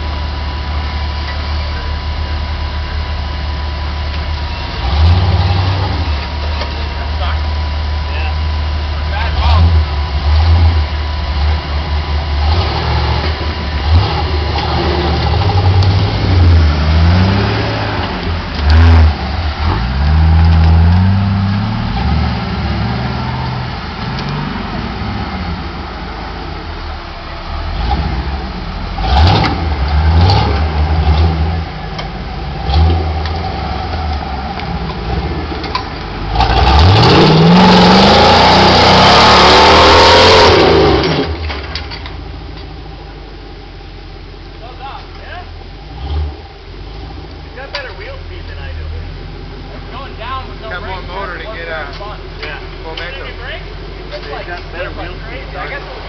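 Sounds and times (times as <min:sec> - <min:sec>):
buggy engine revving: 0:00.0 - 0:56.0.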